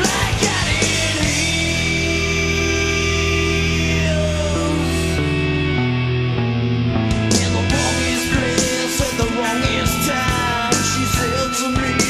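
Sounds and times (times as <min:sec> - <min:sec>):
sustained electric guitar chord: 0:01.4 - 0:11.9.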